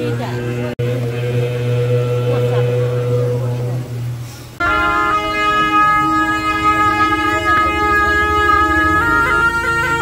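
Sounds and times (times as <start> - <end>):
reedy horns holding long notes: 0.0 - 10.0.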